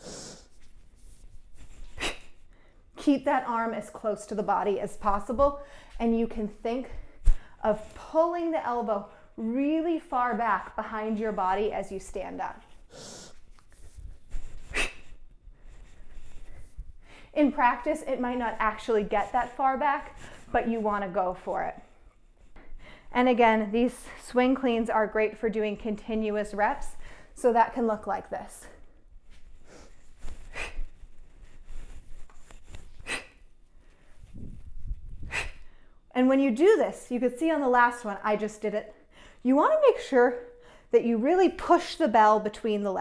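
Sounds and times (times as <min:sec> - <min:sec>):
woman breathing forcefully: 0:00.0 - 0:00.5, 0:35.2 - 0:36.0.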